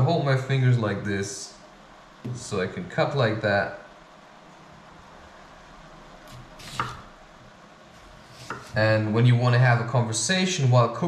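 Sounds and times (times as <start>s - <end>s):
knife cutting on wooden board: 6.3s - 7.1s, 8.0s - 8.8s.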